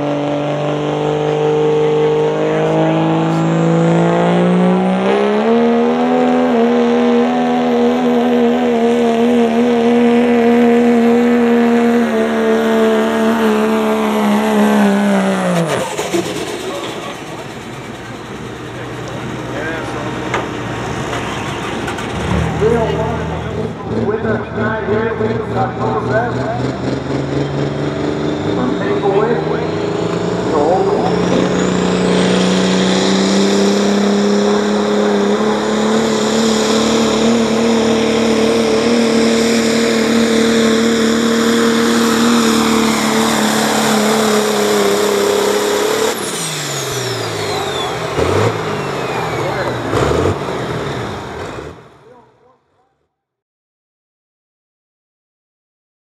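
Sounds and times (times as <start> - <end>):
high turbo whine: 0.0 - 52.2
diesel truck engine at full throttle: 0.0 - 52.5.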